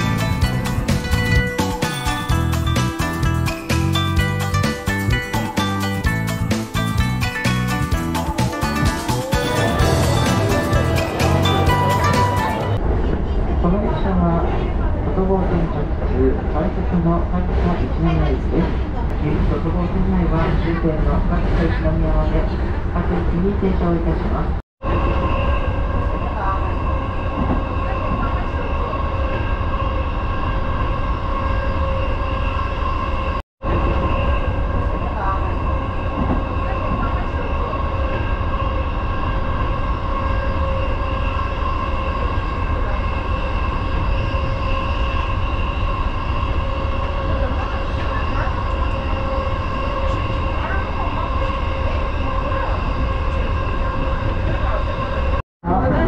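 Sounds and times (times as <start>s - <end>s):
train rumble: 6.0s - 56.0s
train motor whine: 25.0s - 55.4s.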